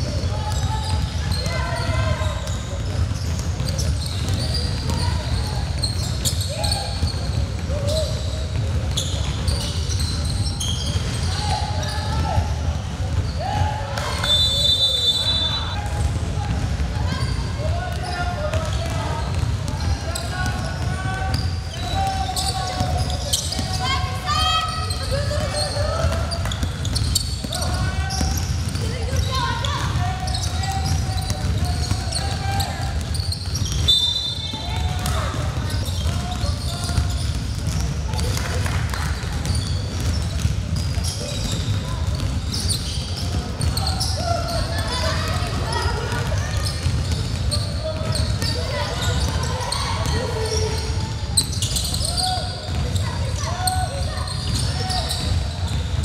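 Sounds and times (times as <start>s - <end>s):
players calling out: 0.0s - 56.0s
sneakers squeaking: 0.0s - 56.0s
basketball bouncing: 25.1s - 44.0s, 45.2s - 50.7s, 51.4s - 53.0s
high squeak or whistle: 33.2s - 34.6s.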